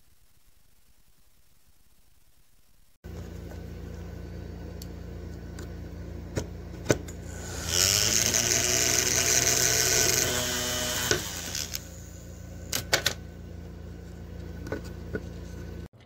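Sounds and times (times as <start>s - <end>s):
small electric motor running: 7.3s - 12.4s.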